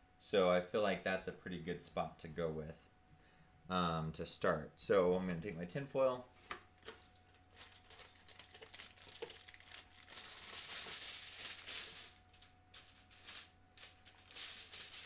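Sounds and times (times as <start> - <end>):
plastic bag rustling: 6.3 - 15.0.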